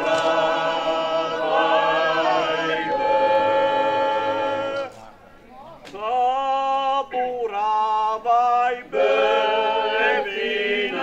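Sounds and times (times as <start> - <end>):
men's choir singing a cappella: 0.0 - 5.0, 6.0 - 11.0.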